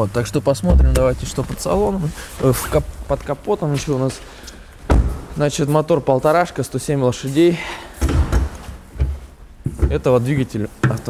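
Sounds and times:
dull thumps: 0:00.6 - 0:02.0, 0:04.8 - 0:05.4.

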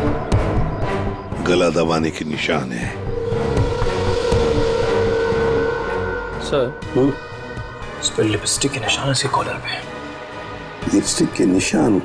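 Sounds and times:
low rumble: 0:02.7 - 0:08.7
sustained drone note: 0:02.7 - 0:09.0.

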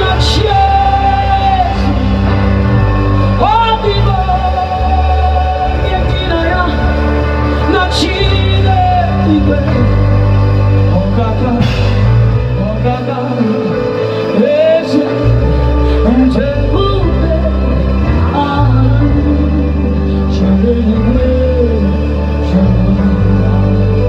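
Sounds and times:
bass: 0:00.0 - 0:24.0
keyboard chords: 0:00.0 - 0:24.0
woman singing into microphone: 0:00.0 - 0:24.0.

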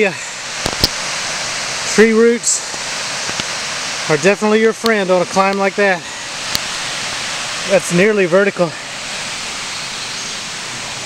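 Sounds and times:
creek rushing over rocks: 0:00.0 - 0:11.0.

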